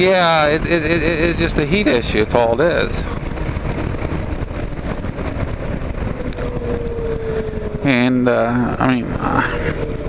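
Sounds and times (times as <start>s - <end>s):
faint whine: 0.0s - 10.0s
motorcycle engine running: 0.0s - 10.0s
wind and road noise: 0.0s - 10.0s.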